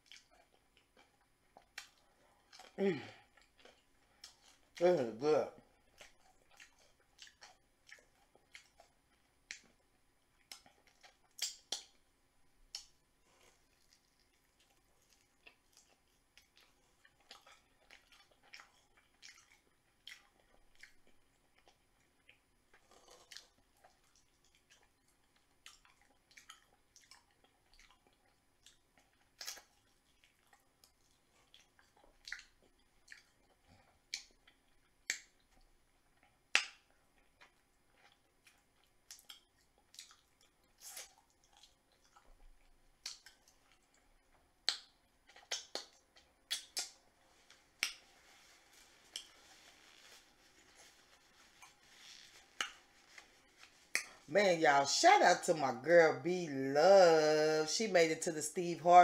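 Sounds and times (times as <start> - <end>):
person chewing with mouth smacks: 0.0 - 4.8, 5.7 - 12.0, 12.7 - 54.3.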